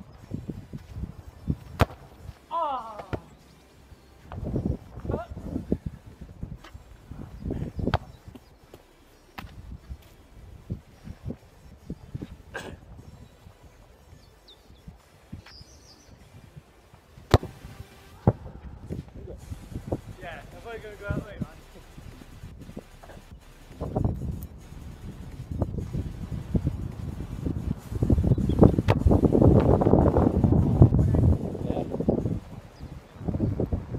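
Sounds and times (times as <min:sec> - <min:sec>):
wind buffeting microphone: 0:00.0 - 0:02.4, 0:03.3 - 0:33.9
football thud: 0:01.6 - 0:02.1, 0:07.8 - 0:08.1, 0:17.3 - 0:18.5, 0:28.7 - 0:29.8.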